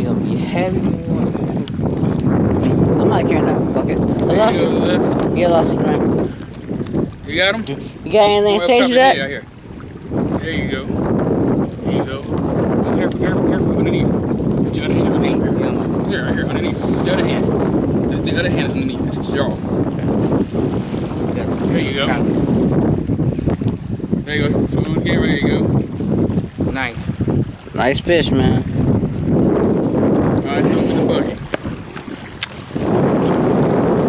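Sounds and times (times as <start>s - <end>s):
wind buffeting microphone: 0.0s - 34.0s
men's voices: 4.2s - 5.3s, 7.2s - 9.5s, 10.2s - 11.1s, 11.8s - 20.1s, 21.6s - 22.4s, 24.2s - 25.8s, 30.4s - 31.4s.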